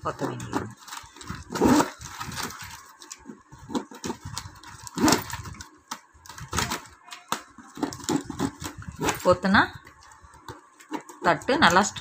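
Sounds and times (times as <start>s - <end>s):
plastic tape rustling and clicking: 0.0s - 12.0s.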